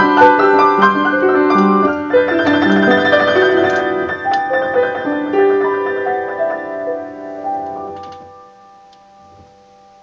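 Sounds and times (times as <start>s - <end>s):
piano chord ringing: 0.0s - 10.0s.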